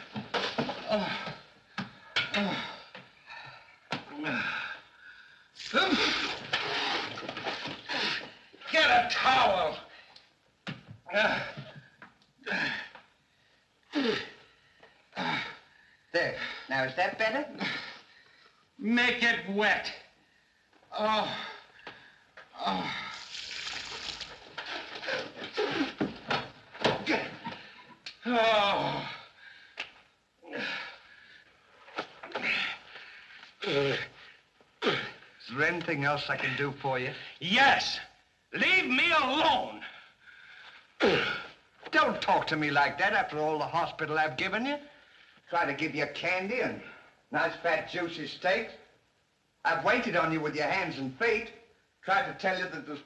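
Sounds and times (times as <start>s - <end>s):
water splashing on head: 23.1s - 25.1s.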